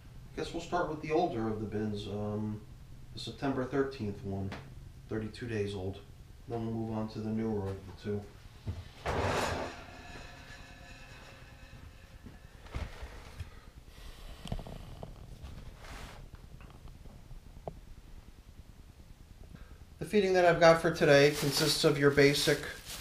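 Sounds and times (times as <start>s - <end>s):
plastic bin scraping on shelf: 8.7s - 10.3s
handling knocks and rustles: 21.2s - 23.0s.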